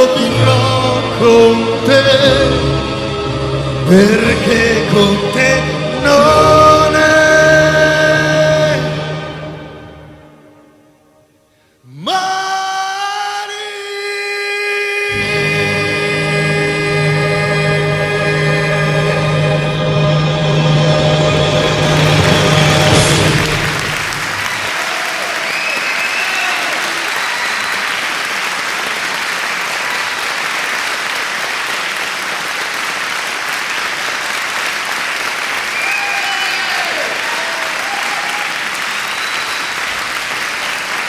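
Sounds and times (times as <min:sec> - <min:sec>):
music: 0:00.0 - 0:11.5, 0:13.0 - 0:24.7
audience applauding: 0:21.3 - 0:41.0.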